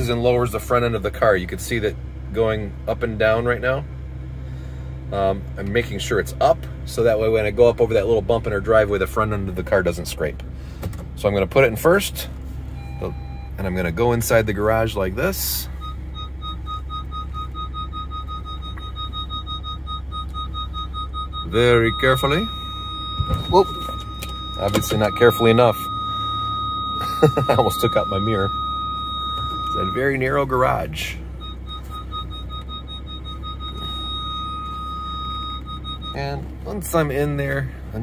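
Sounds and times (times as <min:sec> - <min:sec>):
car engine rumble: 0:00.0 - 0:38.0
parking sensor beeping: 0:11.1 - 0:38.0.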